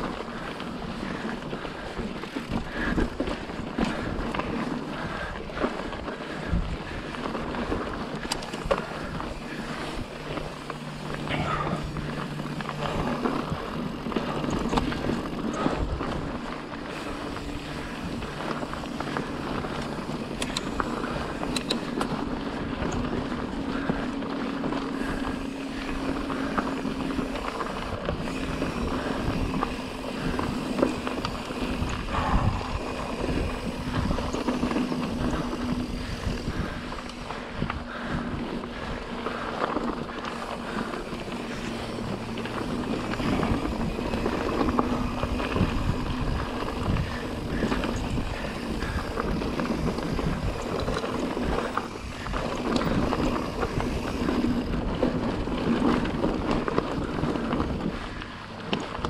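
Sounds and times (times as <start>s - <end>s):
bike rattling and knocking: 0.0s - 59.0s
tyres crunching on gravel: 0.0s - 59.0s
wind on microphone: 24.9s - 58.2s.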